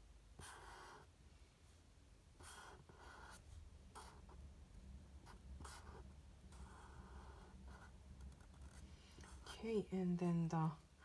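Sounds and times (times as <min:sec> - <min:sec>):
marker scratching on paper: 0:00.4 - 0:01.1, 0:02.4 - 0:04.4, 0:05.2 - 0:09.7.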